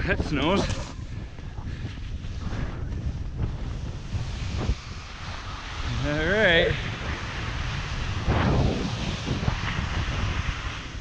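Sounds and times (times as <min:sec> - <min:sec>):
wind on microphone: 0:00.0 - 0:11.0
skis scraping through snow: 0:01.7 - 0:11.0.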